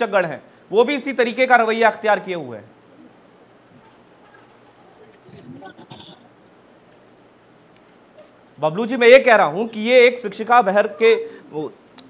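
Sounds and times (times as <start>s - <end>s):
background hiss: 0.0s - 12.0s
faint bleating call: 5.6s - 6.3s.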